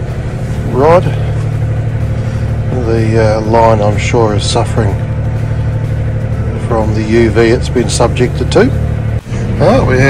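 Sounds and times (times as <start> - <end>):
engine running: 0.0 - 10.0.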